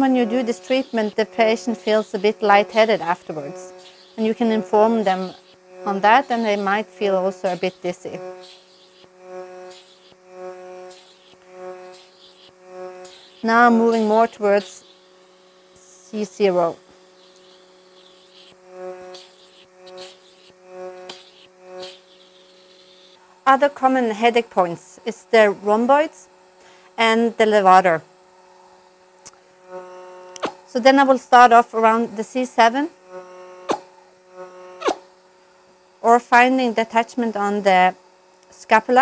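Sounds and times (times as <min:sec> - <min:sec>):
cupping machine humming: 0:00.0 - 0:39.0.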